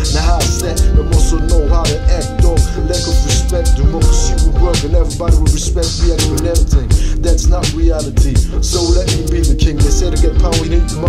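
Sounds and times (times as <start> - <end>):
drum hits: 0.0 - 10.8
heavy bass: 0.0 - 11.0
rapping over a beat: 0.0 - 11.0.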